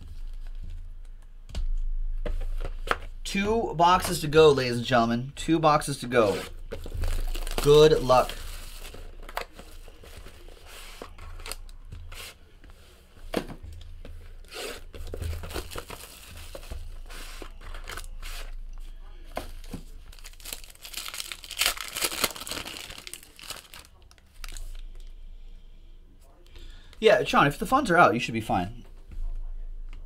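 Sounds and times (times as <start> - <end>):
plastic wrapping crinkling and tearing: 6.7 - 11.8, 14.5 - 18.6, 19.4 - 25.1.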